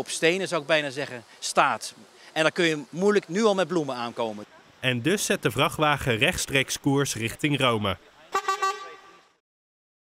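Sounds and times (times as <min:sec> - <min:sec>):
vehicle horn toot: 0:08.3 - 0:09.4.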